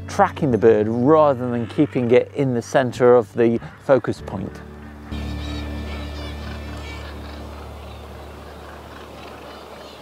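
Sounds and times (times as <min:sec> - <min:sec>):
seabirds calling: 0:00.0 - 0:10.0.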